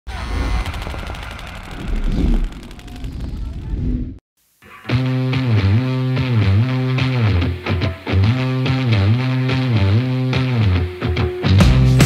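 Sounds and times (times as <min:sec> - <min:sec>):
deep rumble: 0:00.1 - 0:04.2.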